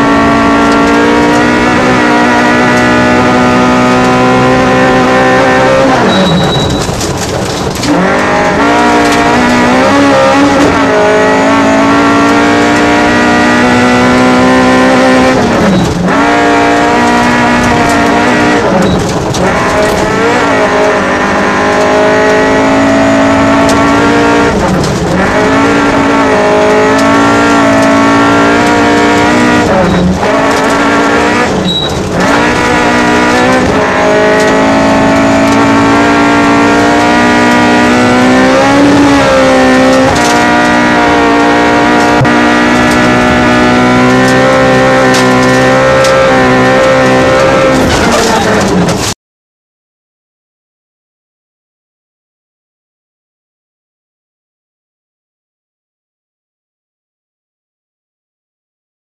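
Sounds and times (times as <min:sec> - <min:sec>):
rally car engine at high revs: 0:00.0 - 0:49.2.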